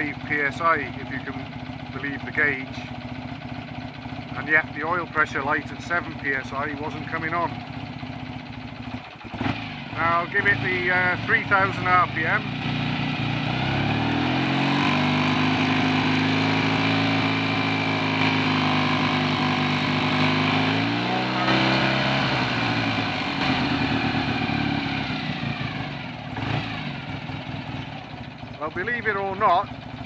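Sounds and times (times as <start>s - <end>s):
motorcycle engine revving: 0.0s - 30.0s.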